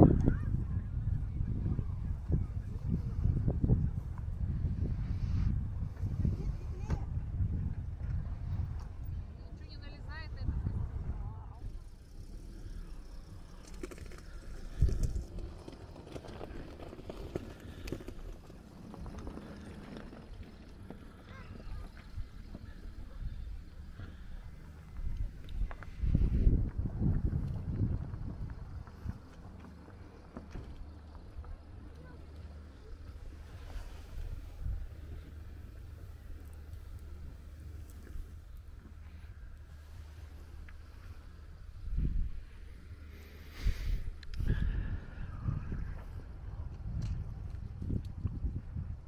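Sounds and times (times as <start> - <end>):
low steady rumble: 0.0 - 49.0.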